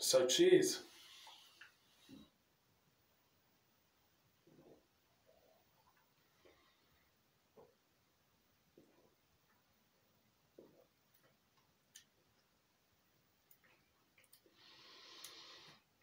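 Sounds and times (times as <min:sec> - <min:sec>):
man sipping and swallowing: 0:04.4 - 0:06.6, 0:10.5 - 0:11.3.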